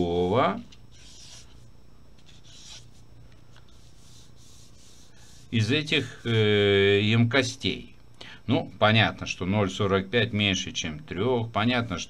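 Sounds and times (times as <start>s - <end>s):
marker pen scratching on paper: 0.9s - 3.0s, 3.6s - 6.4s.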